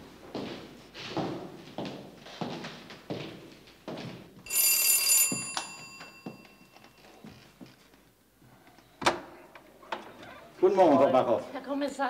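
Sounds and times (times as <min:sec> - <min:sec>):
footsteps on hard floor: 0:00.0 - 0:08.0
electric doorbell ringing: 0:04.5 - 0:07.2.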